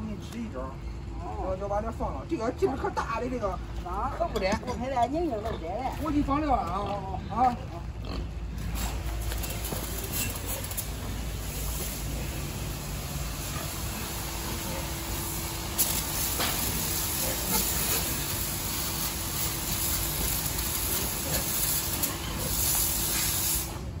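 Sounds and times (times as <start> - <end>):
water spraying from a hose: 9.2 - 24.0.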